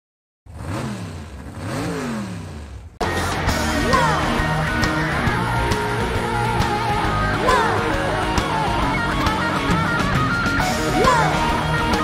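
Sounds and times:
car engine revving: 0.5s - 12.0s
loud concert music: 3.0s - 12.0s.

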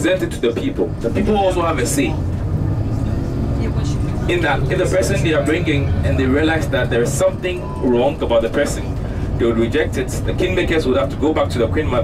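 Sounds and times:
bus engine and road rumble: 0.0s - 12.0s.

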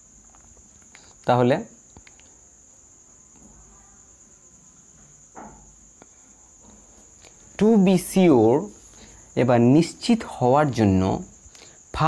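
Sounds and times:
person speaking: 7.6s - 11.4s.

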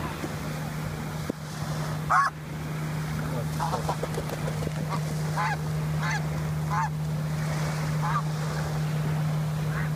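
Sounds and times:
low hum: 0.0s - 9.9s
goose honking: 4.9s - 7.0s.

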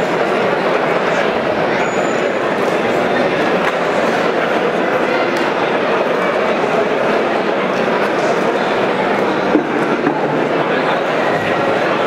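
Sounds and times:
crowd talking indoors: 0.0s - 12.0s.

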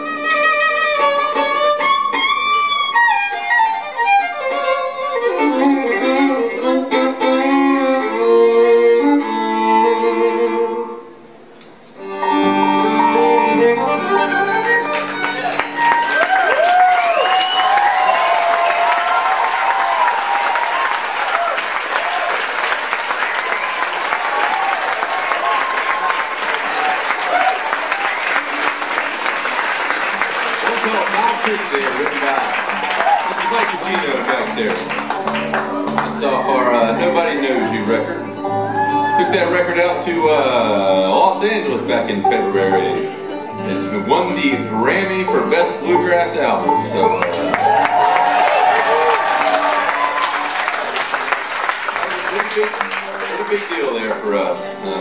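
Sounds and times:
fiddle: 0.0s - 11.3s, 11.9s - 18.6s, 28.4s - 48.5s
banjo mandolin and guitar: 1.0s - 10.6s, 12.1s - 16.1s, 33.6s - 47.8s, 52.8s - 55.0s
audience whistling: 12.3s - 35.2s, 46.8s - 54.0s
audience applause: 14.2s - 36.4s, 47.1s - 54.4s.

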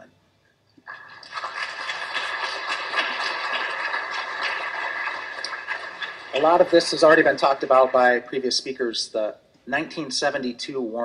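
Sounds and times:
audience applauding: 0.9s - 8.4s.

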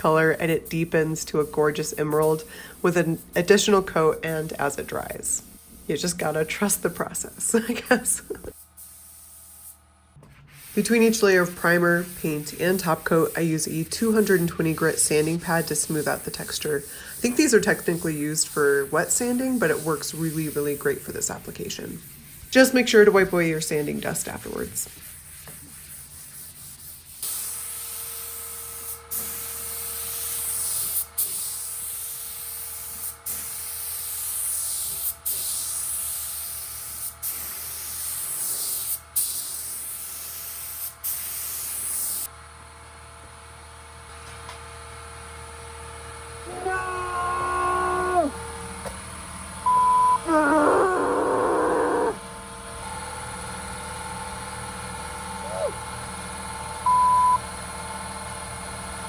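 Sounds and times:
paint spray gun hissing: 2.0s - 9.8s, 10.6s - 22.5s, 26.8s - 42.3s
short voice-like calls: 46.5s - 48.4s, 49.7s - 52.2s, 55.4s - 55.8s
brief high beeps: 49.7s - 50.2s, 56.9s - 57.4s.

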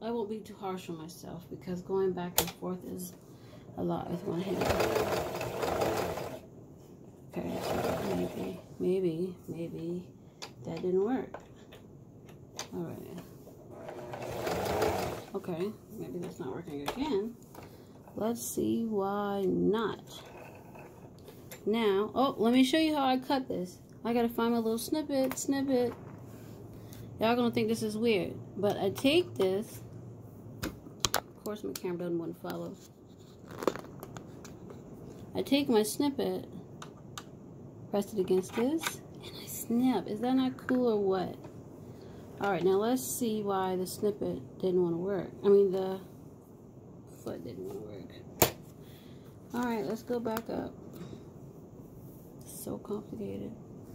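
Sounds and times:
sewing machine stitching: 4.4s - 6.4s, 7.4s - 8.6s, 13.7s - 15.4s.

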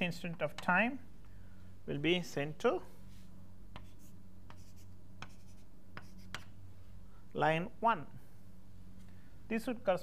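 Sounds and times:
steady low hum: 0.0s - 10.0s
pen taps and scratches: 3.7s - 6.5s.

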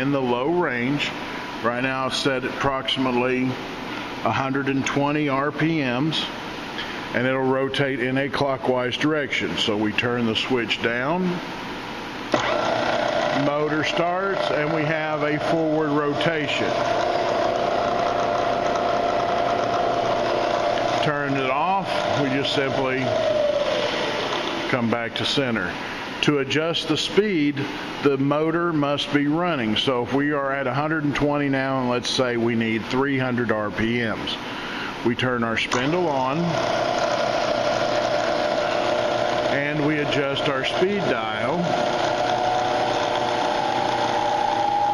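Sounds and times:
milling machine motor humming: 10.2s - 25.2s, 35.7s - 44.9s.

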